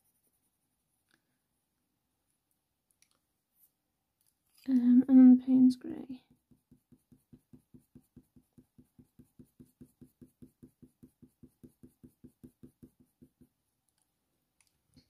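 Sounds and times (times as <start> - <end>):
coloured pencil shading on paper: 6.1 - 13.7.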